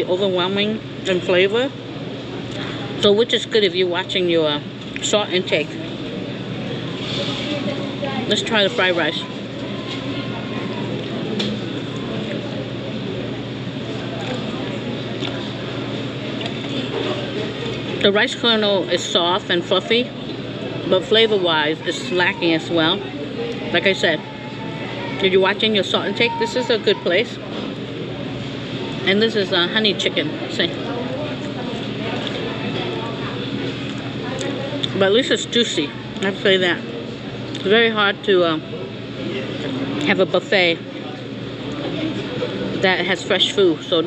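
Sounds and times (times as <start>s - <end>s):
distant conversation: 0.0s - 44.0s
murmur of diners' voices: 0.0s - 44.0s.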